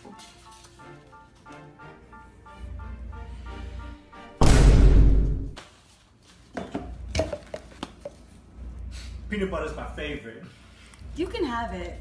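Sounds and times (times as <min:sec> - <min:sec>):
loud crash: 0:04.4 - 0:05.6.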